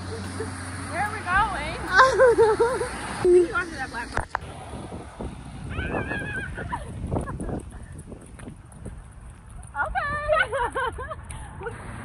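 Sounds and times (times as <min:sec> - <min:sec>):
woman laughing: 0:00.0 - 0:00.6, 0:01.8 - 0:03.8, 0:05.8 - 0:07.9, 0:10.2 - 0:11.7
steady low rumble: 0:00.0 - 0:11.7.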